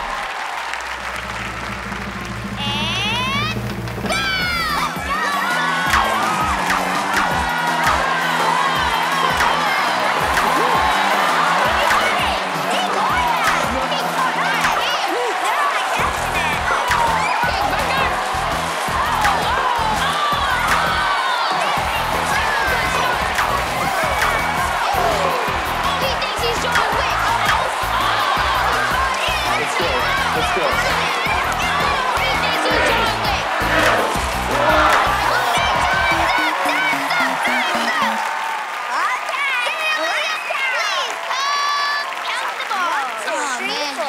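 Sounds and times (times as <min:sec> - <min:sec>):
upbeat game-show music: 0:00.0 - 0:38.9
kids shouting excitedly: 0:02.7 - 0:44.0.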